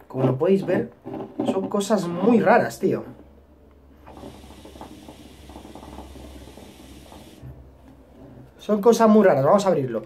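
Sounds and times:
hookah water bubbling: 3.9s - 7.7s.

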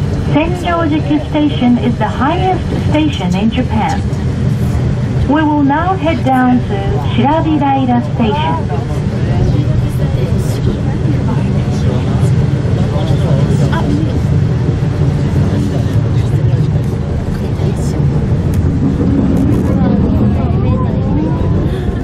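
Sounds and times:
cable car cabin rumbling: 0.0s - 22.0s
passengers talking: 0.0s - 22.0s.

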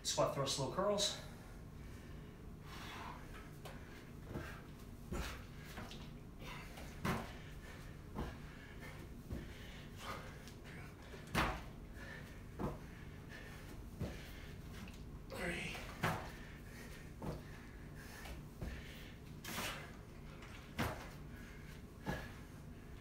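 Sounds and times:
soft thuds on rubber flooring: 6.8s - 7.5s, 8.1s - 8.5s, 9.2s - 10.2s, 11.2s - 11.8s, 12.6s - 12.9s, 15.8s - 16.4s, 20.7s - 21.2s.

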